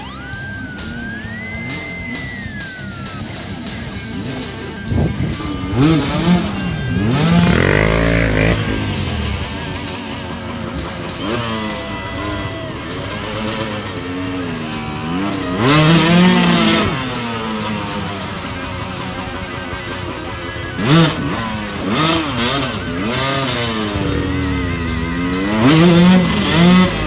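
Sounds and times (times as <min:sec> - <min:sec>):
background music: 0:00.0 - 0:27.0
motorcycle engine revving: 0:00.0 - 0:27.0.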